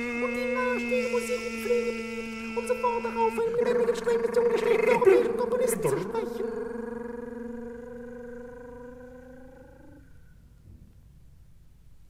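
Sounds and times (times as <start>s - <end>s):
held musical note: 0.0s - 7.4s.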